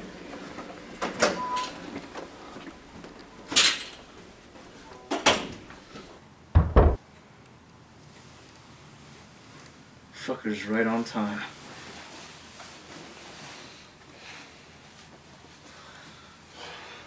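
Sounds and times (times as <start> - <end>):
door clacks: 6.6 - 7.0
heavy low door thuds: 6.6 - 7.0.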